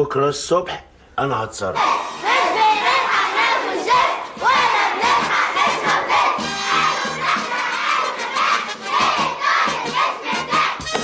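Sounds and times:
girls chanting slogans: 1.8 - 10.8.

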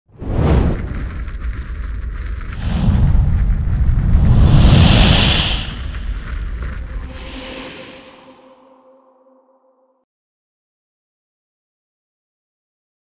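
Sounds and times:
flame burst whoosh: 0.1 - 8.4.

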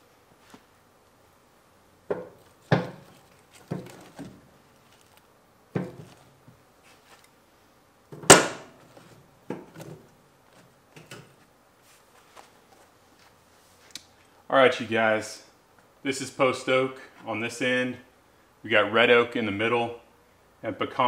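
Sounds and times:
wooden logs knocking and scraping: 2.1 - 6.6.

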